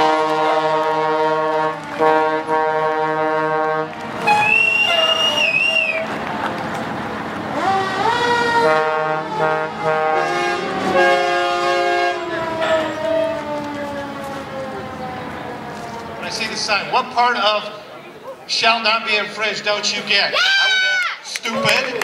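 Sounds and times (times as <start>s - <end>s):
fire truck horns: 0.0s - 17.8s.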